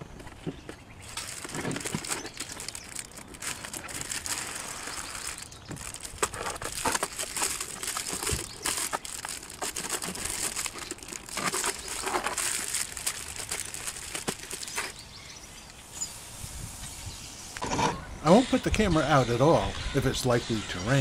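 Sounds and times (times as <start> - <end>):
plastic mailer bag crinkling: 1.0 - 15.0.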